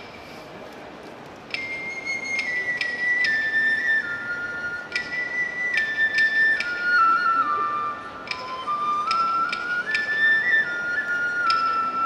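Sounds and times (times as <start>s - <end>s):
bamboo flute melody: 0.0s - 12.0s
percussion strikes: 1.4s - 7.3s, 8.1s - 12.0s.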